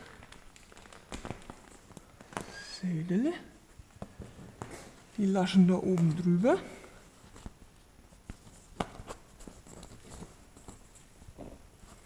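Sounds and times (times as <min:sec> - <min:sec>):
canvas rustling: 0:00.0 - 0:12.0.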